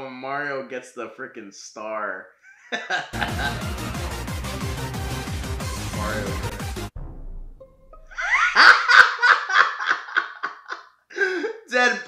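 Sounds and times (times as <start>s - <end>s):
man laughing hard: 2.5s - 4.0s, 8.1s - 11.7s.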